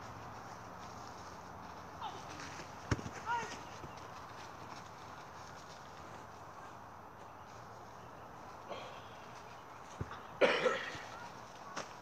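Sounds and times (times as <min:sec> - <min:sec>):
person coughing or exclaiming: 0:10.4 - 0:11.0.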